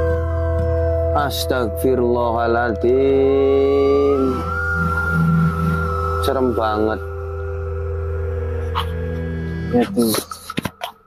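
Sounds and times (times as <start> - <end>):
sustained chords music: 0.0 - 10.5
person speaking: 9.7 - 10.6.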